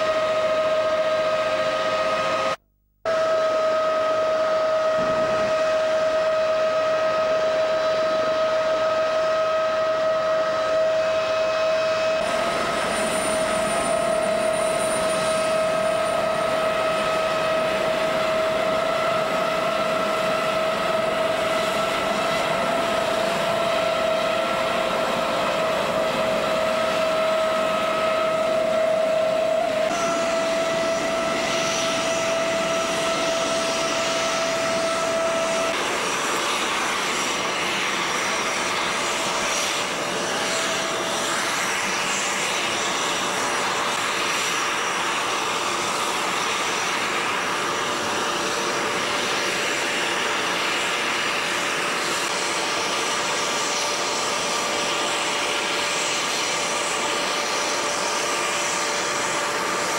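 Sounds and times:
helicopter turbine whine: 0.0s - 59.9s
helicopter rotor rushing noise: 11.6s - 59.9s.

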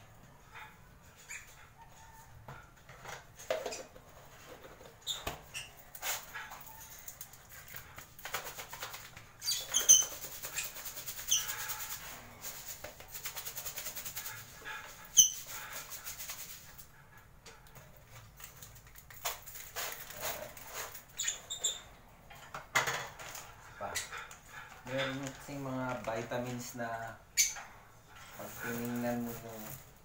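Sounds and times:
birds chirping high: 9.4s - 11.9s, 15.0s - 15.6s.

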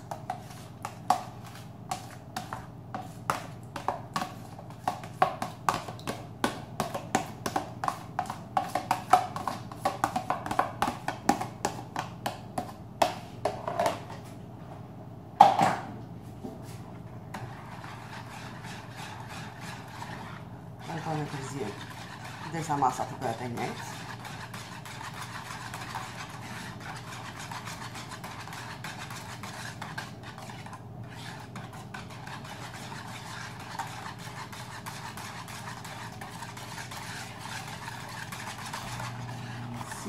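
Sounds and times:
person speaking: 20.8s - 24.0s.

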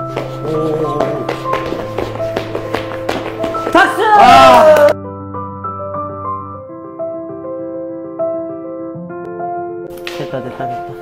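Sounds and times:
dog paws tapping on wooden floor: 0.0s - 5.0s
background music: 0.0s - 11.0s.

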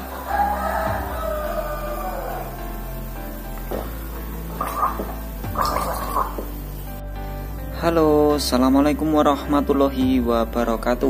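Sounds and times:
background music: 0.0s - 11.0s
man gargling liquid: 4.6s - 6.6s.

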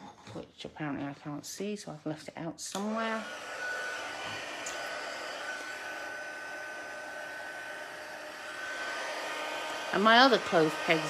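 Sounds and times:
heat tool blowing with whine: 2.8s - 11.0s.

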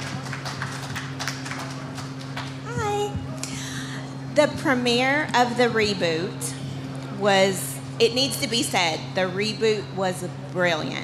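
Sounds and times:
scattered handclaps: 0.0s - 3.0s
low pa system hum: 0.0s - 11.0s.

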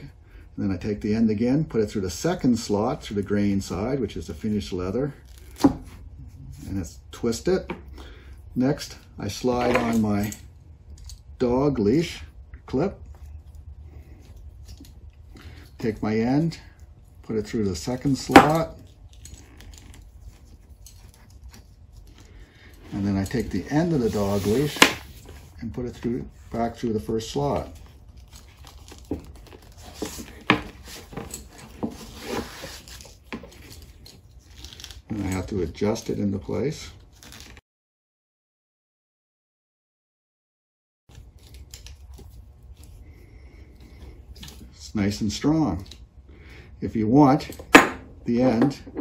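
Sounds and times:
low room hum: 0.0s - 37.6s, 41.1s - 49.0s
leather strap rustling: 18.1s - 35.4s.

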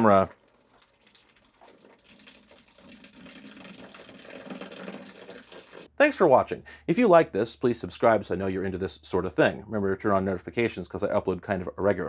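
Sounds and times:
liquid pouring: 0.0s - 5.9s.

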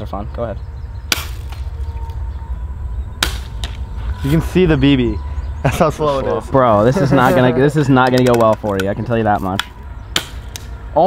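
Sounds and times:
bb gun shot crack: 1.1s - 1.7s, 3.2s - 3.8s, 9.6s - 10.8s.

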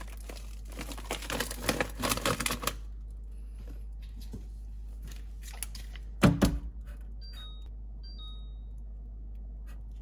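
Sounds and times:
refrigerator two-note beep: 7.2s - 8.9s.

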